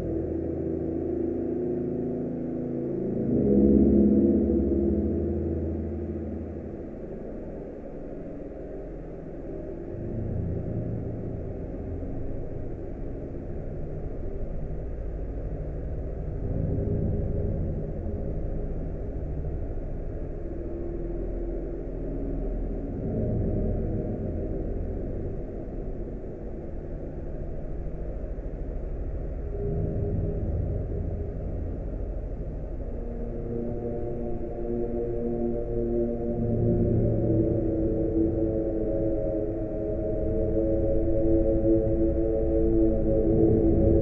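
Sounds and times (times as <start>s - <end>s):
dark droning ambient music: 0.0s - 44.0s.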